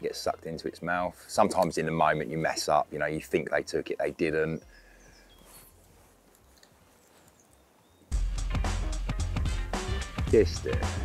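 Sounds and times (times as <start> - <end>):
music with deep bass: 8.1 - 11.0.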